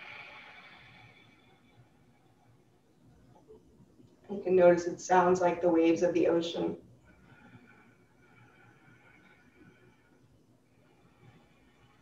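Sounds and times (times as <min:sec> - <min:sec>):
soft hiss of breath: 0:00.0 - 0:02.4, 0:07.0 - 0:12.0.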